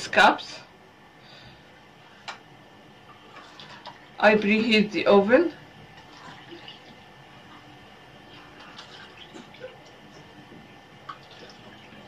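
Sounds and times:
milk trickling into cups: 0:03.1 - 0:04.2, 0:05.8 - 0:12.0.

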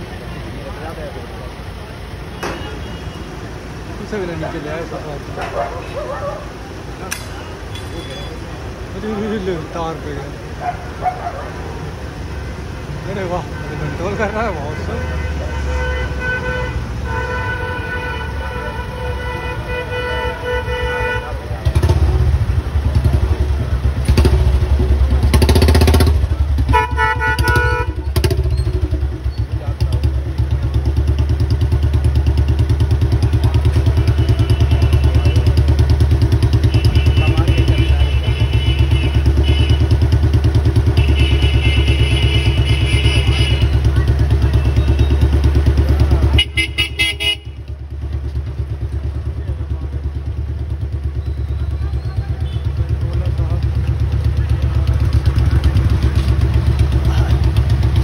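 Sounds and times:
vehicle horn: 0:13.4 - 0:21.9, 0:26.6 - 0:28.4, 0:33.8 - 0:45.3, 0:46.3 - 0:47.7
engine running loudly: 0:52.4 - 0:58.0.

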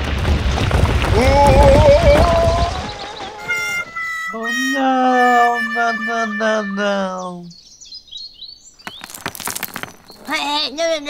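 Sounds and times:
long voice-like cry: 0:01.2 - 0:07.5
faint high tone: 0:03.6 - 0:07.2.

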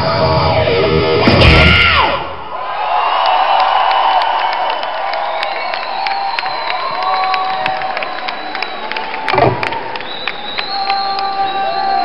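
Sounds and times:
rock band with electric guitar: 0:00.0 - 0:02.2
crowd cheering: 0:01.3 - 0:12.0.

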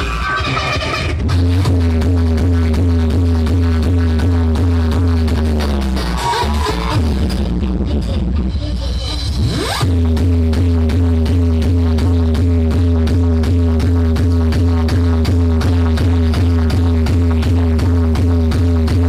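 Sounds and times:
heavy booming bass: 0:00.0 - 0:19.0
loud dance music: 0:00.0 - 0:19.0.

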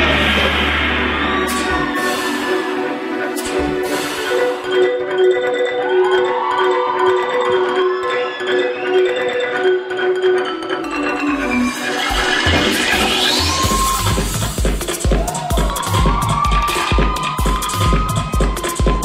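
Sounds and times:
heavy bass beat: 0:00.0 - 0:04.6, 0:11.7 - 0:19.0
rising sweep: 0:00.0 - 0:05.0, 0:07.5 - 0:14.5
dance music over sound system: 0:00.0 - 0:19.0.

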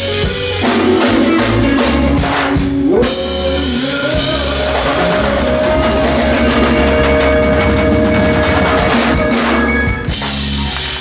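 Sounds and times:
jazz blues band playing: 0:00.0 - 0:11.0
rapid drum and cymbal strikes: 0:00.0 - 0:11.0.

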